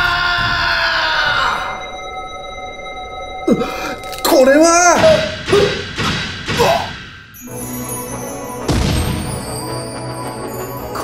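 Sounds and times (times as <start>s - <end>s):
held electronic tone: 1.7s - 5.5s.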